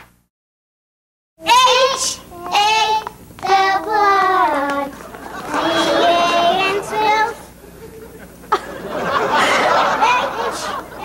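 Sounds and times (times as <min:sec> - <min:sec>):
young children singing: 0:01.4 - 0:07.5.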